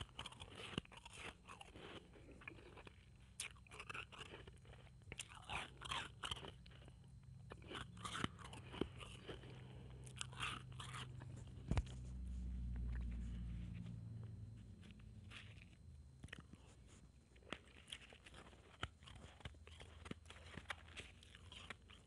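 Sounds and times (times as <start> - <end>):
ice being chewed and crunched: 0.0 - 22.0.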